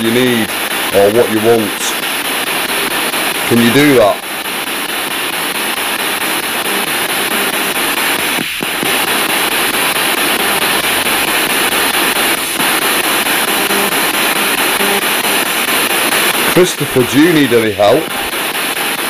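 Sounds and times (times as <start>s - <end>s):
radio static and hiss: 0.0s - 19.0s
scraps of broadcast sound: 0.0s - 19.0s.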